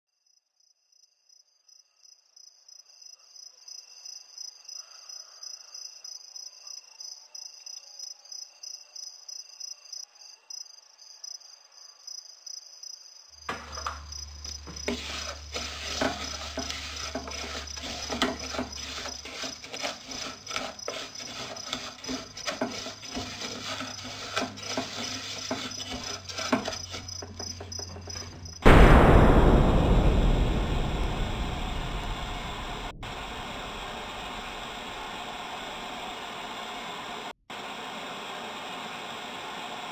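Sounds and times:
crickets chirping: 0.2 - 15.4
loud low hum: 28.6 - 35.4
rush of noise: 28.6 - 35.6.

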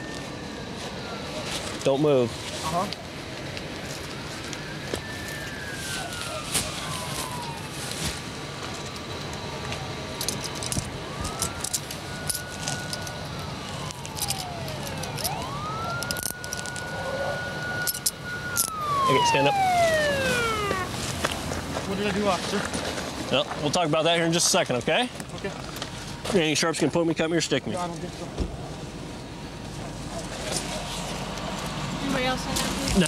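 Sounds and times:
police siren wailing: 0.0 - 23.2
handcuffs clicking shut: 10.2 - 13.2, 13.9 - 15.4, 16.0 - 16.8, 17.8 - 18.8.

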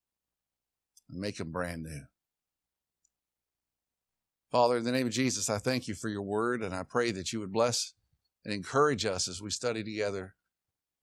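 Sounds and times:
man's voice: 4.6 - 7.9, 8.5 - 10.3.

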